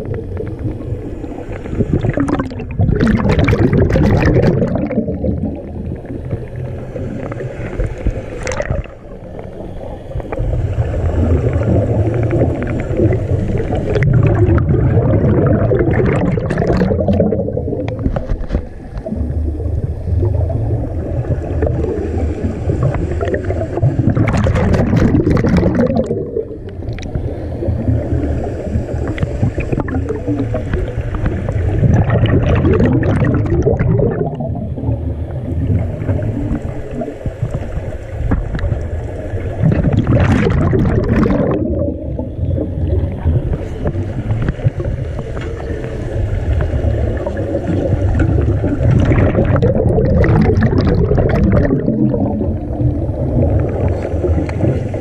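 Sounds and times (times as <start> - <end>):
diver exhaust bubbling underwater: 1.6 - 7.5, 10.8 - 37.1, 39.5 - 45.0, 46.8 - 55.0.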